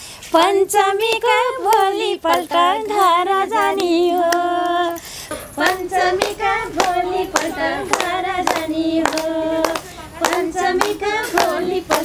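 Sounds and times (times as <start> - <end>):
women singing folk song: 0.1 - 12.0
hand claps: 1.0 - 12.0.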